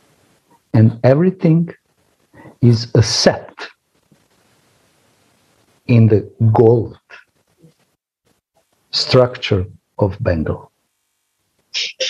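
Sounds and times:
soft hiss: 0.0 - 12.0
man speaking: 0.8 - 1.8, 2.4 - 3.7, 5.9 - 7.2, 9.0 - 10.7, 11.8 - 12.0.

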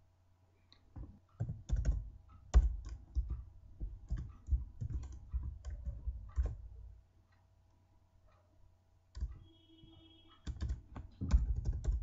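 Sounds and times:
keyboard typing: 1.3 - 6.8, 9.1 - 12.0.

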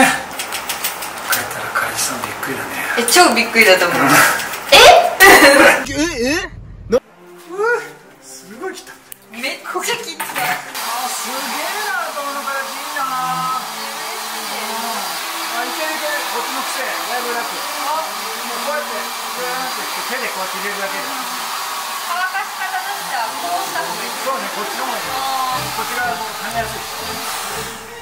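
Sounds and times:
hair dryer blowing: 10.6 - 28.0.

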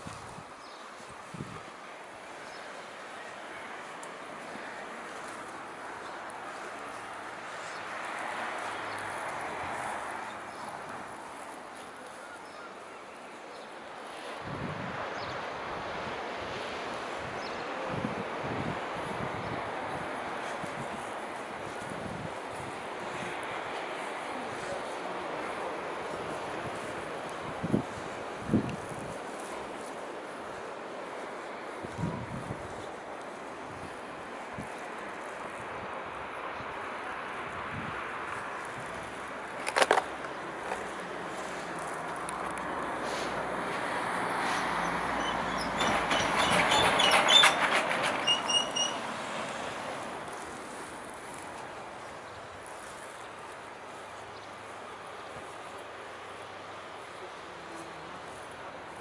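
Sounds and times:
wind buffeting microphone: 0.0 - 2.7, 14.2 - 56.6
passing vehicle rush: 0.0 - 59.0.

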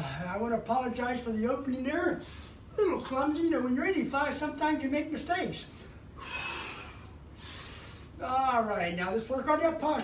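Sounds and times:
man breathing hard: 6.1 - 8.2.

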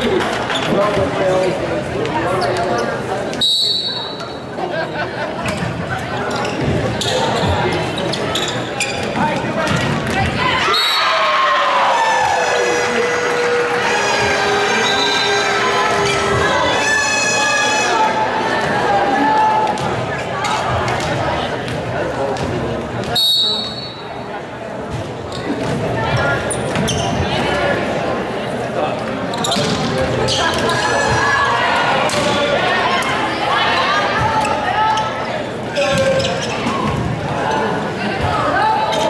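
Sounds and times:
crowd voices: 0.0 - 39.0
voices shouting: 10.2 - 20.7, 30.2 - 39.0.

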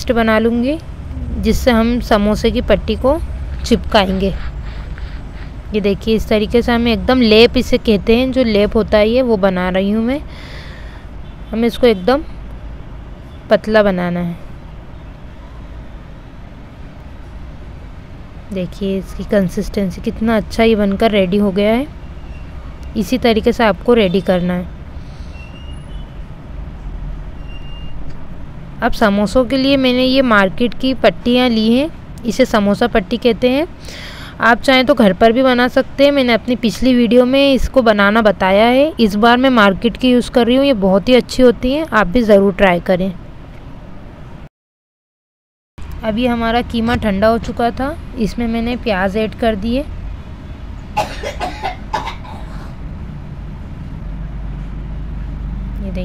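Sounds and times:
low background rumble: 0.0 - 11.1
low rumble: 0.8 - 5.8
faint high whistling tones: 25.3 - 26.2.

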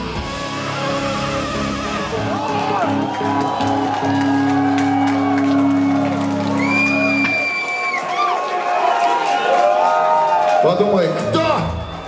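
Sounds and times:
live band holding a chord: 0.0 - 7.6
crowd whooping and shouting: 0.6 - 12.0.

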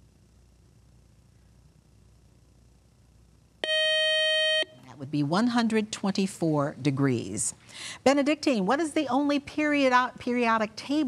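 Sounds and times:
steady electronic beep tone: 3.6 - 4.8.

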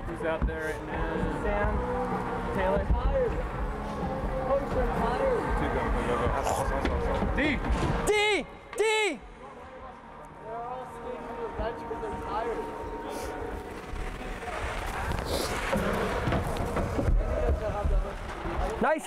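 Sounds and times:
indistinct voices echoing: 0.6 - 18.6.

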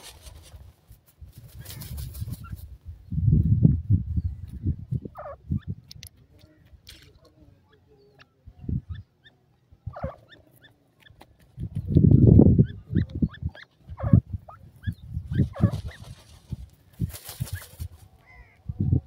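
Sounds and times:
rustling: 0.0 - 2.2
birds chirping: 4.1 - 19.0.

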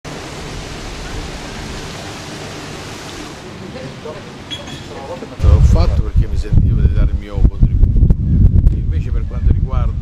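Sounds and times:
fountain water splashing: 0.0 - 5.4.

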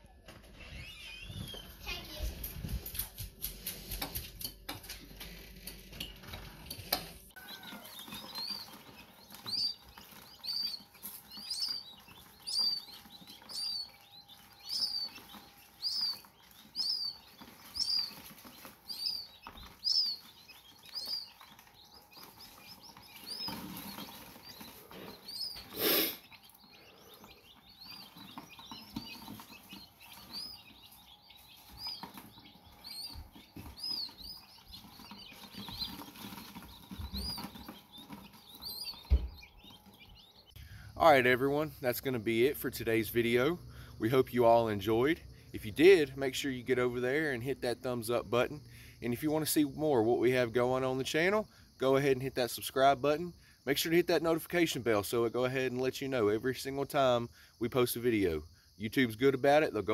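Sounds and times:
quail chicks peeping: 0.0 - 59.9.

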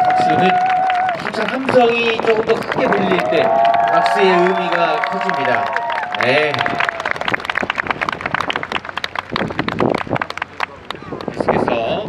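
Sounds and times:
audience applauding: 0.0 - 11.5.

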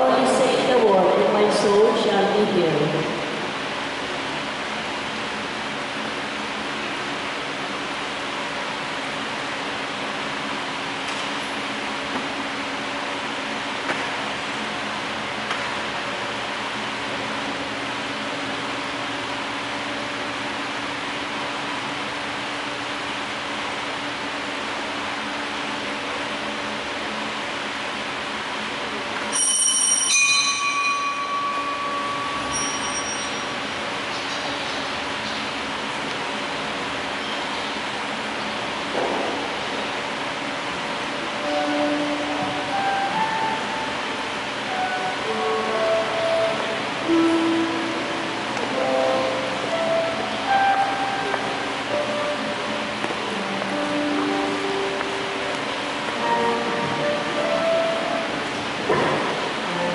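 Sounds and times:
low background hum: 0.0 - 59.9
metallic ring: 29.3 - 33.8.

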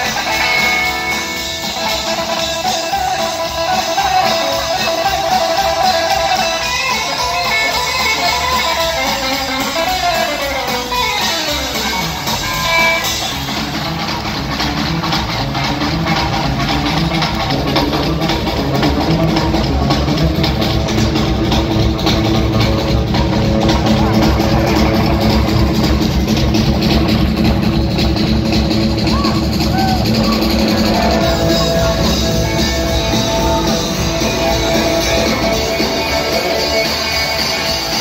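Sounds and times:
drums: 0.0 - 38.0
electric guitar glide: 0.0 - 38.0
upright bass: 0.0 - 38.0.

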